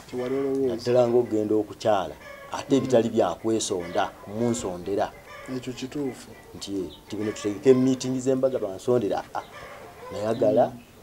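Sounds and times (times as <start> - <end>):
man talking in a low voice: 0.0 - 10.9.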